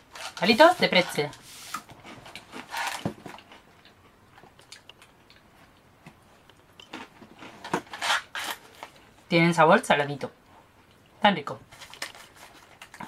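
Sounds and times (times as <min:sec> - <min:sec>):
crunching and chewing: 0:01.7 - 0:09.0.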